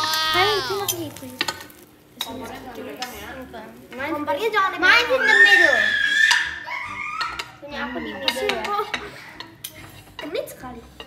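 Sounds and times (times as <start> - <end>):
spoons scraping frying pan: 0.0 - 11.0.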